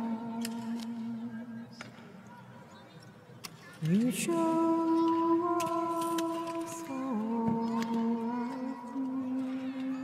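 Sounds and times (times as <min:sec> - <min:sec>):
person singing chant: 0:00.0 - 0:01.8, 0:03.8 - 0:10.0.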